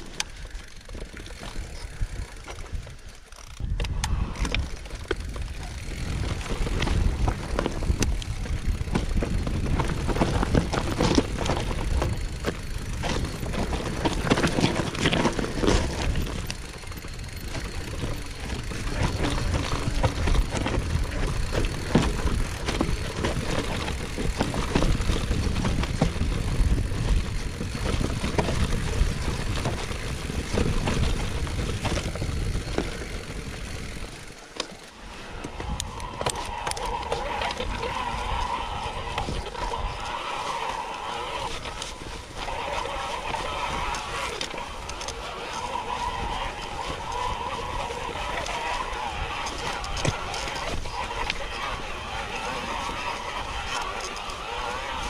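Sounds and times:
bike rattling and clicking: 0.0 - 55.0
tyres crunching over ground: 0.0 - 55.0
wind rumble on microphone: 1.2 - 34.3, 35.1 - 55.0.

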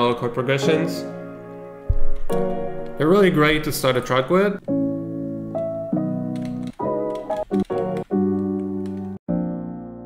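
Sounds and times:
sustained piano chords: 0.0 - 10.0.

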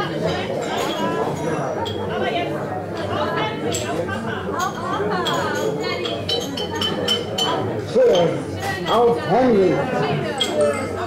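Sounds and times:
audience murmuring: 0.0 - 11.0.

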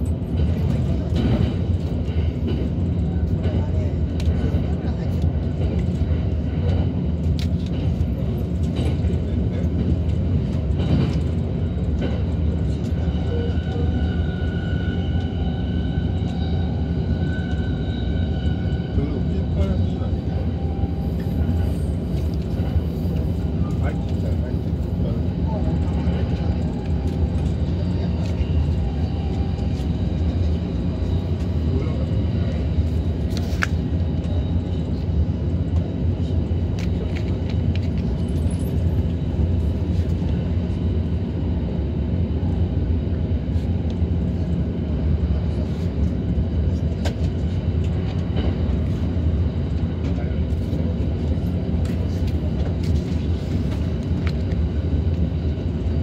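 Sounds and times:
train rumbling on rails: 0.0 - 56.0.

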